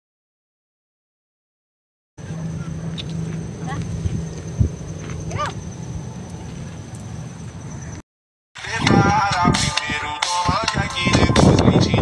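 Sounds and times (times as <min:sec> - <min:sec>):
low steady hum: 0:02.2 - 0:08.0.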